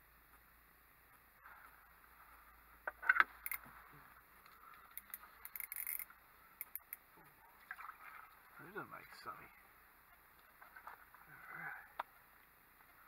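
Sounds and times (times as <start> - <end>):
fishing gear clicks and knocks: 2.9 - 3.7, 4.4 - 7.0.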